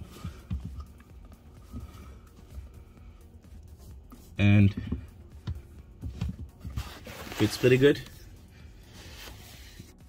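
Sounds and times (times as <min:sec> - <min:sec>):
quiet background music: 0:00.0 - 0:10.0
faint knocks and rubbing: 0:04.1 - 0:07.7.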